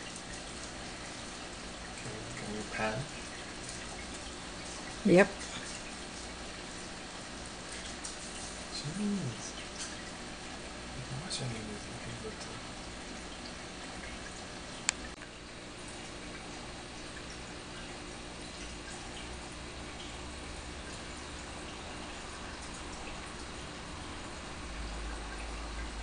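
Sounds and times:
aquarium water trickling and bubbling: 0.0s - 26.0s.

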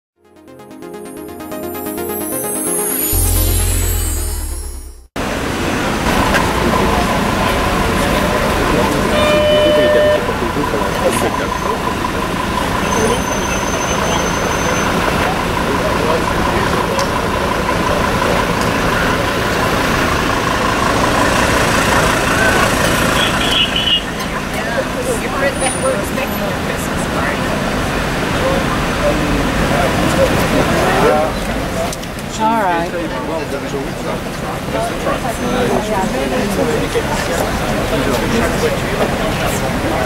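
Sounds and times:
electronic music: 0.2s - 5.2s
road traffic: 5.2s - 40.0s
people talking: 6.1s - 19.9s, 21.8s - 23.4s, 24.1s - 40.0s.

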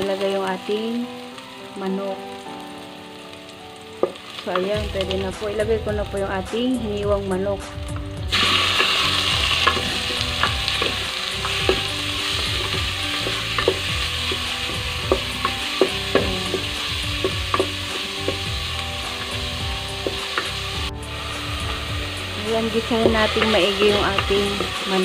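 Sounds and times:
chicken sizzling in hot oil: 0.0s - 25.0s
wooden spatula scraping pot: 21.1s - 24.8s.

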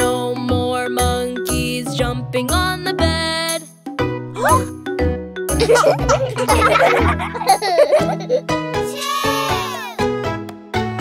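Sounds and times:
bouncy children's song music: 0.0s - 11.0s
cartoon children laughing and squealing: 4.4s - 4.7s, 5.6s - 10.0s.

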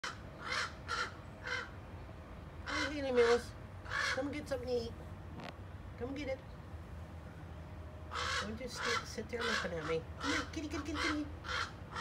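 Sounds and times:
crows cawing: 0.0s - 1.8s, 2.7s - 4.3s, 8.1s - 12.0s.

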